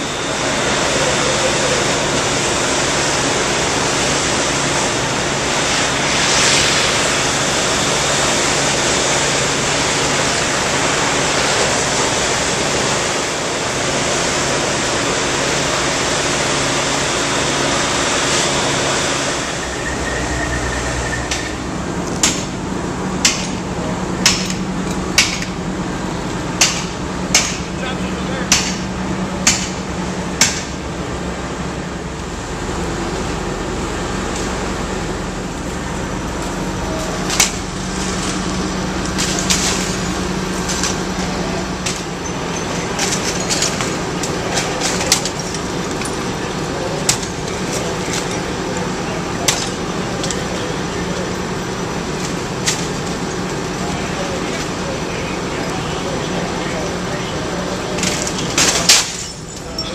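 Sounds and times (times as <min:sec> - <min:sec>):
fire engines running: 0:00.0 - 0:59.9.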